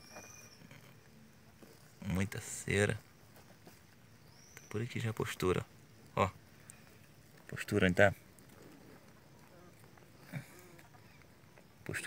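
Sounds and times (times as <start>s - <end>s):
faint low bird calls: 0.0s - 12.0s.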